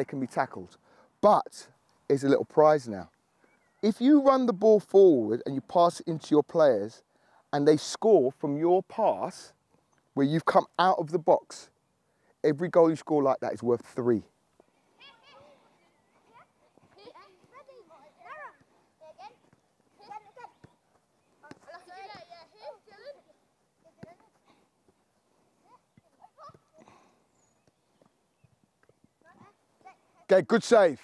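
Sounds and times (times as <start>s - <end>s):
ball being kicked: 19.4s - 22.3s.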